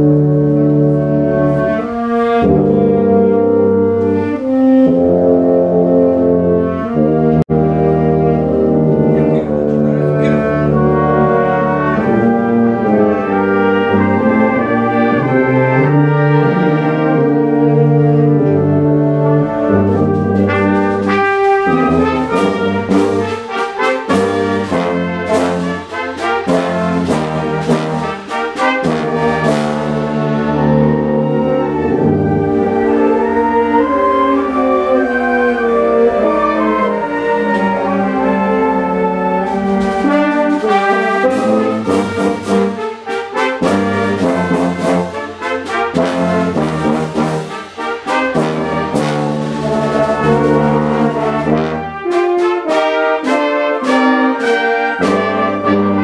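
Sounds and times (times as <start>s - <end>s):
wind ensemble brass chords: 0.0s - 56.0s.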